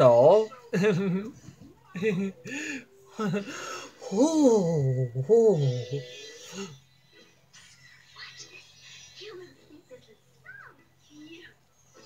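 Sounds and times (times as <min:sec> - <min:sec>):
man saying ooh: 0:04.0 - 0:06.0.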